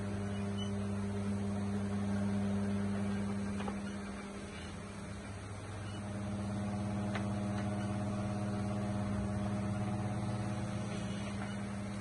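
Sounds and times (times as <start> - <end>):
steady machine hum: 0.0 - 12.0.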